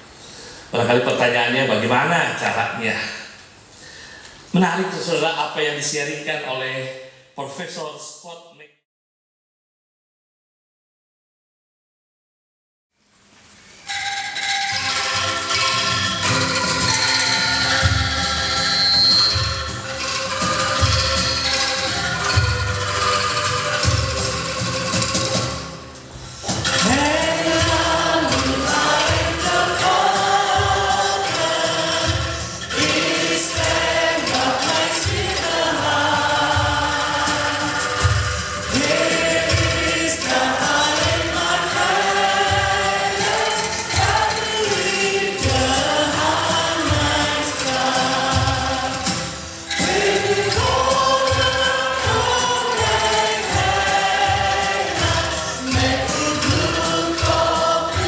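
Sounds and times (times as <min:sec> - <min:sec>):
hymn with instrumental accompaniment: 0:13.9 - 0:58.0
choir singing: 0:26.5 - 0:58.0.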